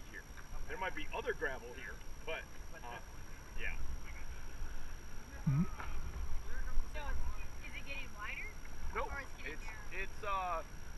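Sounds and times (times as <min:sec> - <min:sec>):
faint chatter of people: 0:00.0 - 0:10.7.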